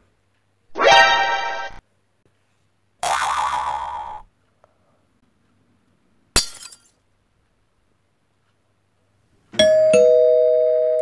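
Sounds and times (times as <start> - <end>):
cartoon boing springy twang: 3.0 - 4.2.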